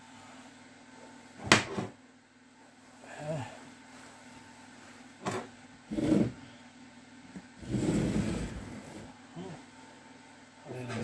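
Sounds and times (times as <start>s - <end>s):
casing scraping across bench: 5.3s - 6.5s, 7.6s - 9.2s.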